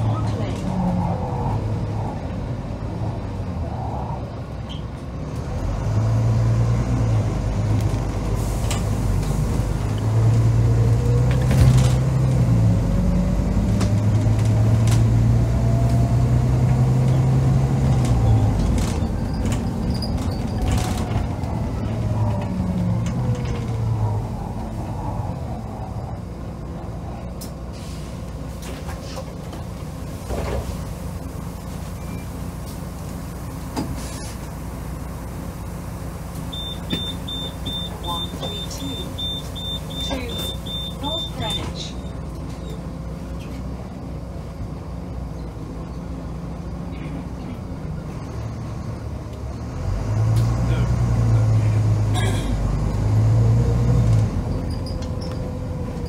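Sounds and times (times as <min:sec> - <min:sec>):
bus diesel engine: 0:00.0 - 0:56.0.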